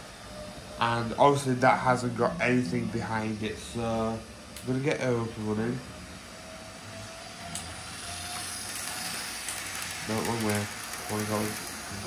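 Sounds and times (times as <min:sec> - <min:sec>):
faint whine: 0:00.0 - 0:12.0
model train motor whirr: 0:06.2 - 0:12.0
wheels rumbling on track: 0:07.7 - 0:12.0.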